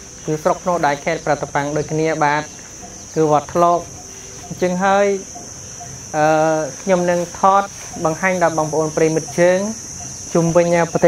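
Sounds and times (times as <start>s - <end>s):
insects droning: 0.0s - 11.0s
man speaking: 0.2s - 11.0s.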